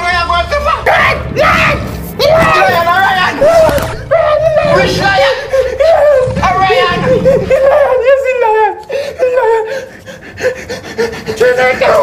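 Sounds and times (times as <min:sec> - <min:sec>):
man laughing: 0:05.1 - 0:08.2.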